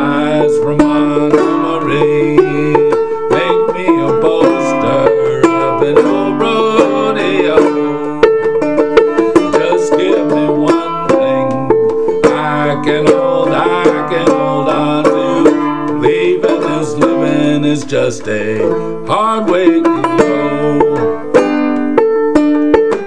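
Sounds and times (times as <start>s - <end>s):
banjo played clawhammer style: 0.0s - 23.0s.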